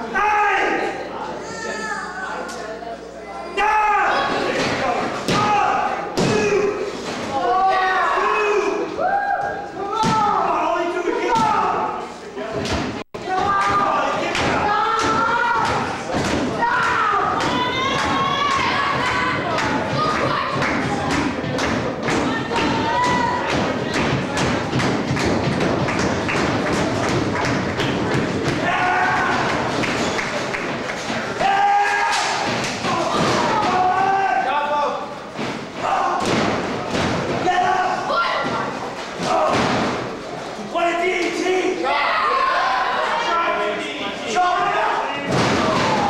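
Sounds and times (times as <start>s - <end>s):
spectators shouting: 13.2s - 20.6s, 28.4s - 30.2s
thuds and knocks in wrestling ring: 35.4s - 37.5s, 45.2s - 46.0s.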